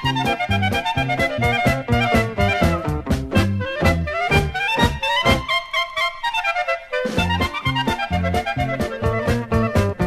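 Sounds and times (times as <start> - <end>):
bass: 0.0 - 5.5, 7.1 - 10.0
saxophone melody: 0.0 - 10.0.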